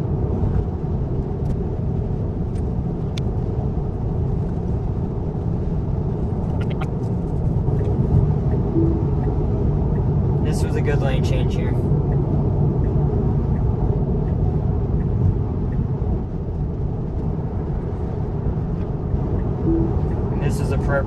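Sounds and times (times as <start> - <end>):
road and tyre noise in car cabin: 0.0 - 21.0.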